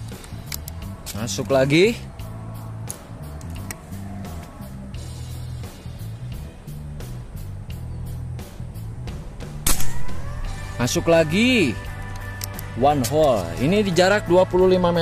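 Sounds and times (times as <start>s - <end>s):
background music with steady beat: 0.0s - 15.0s
air rifle shot: 9.6s - 10.0s.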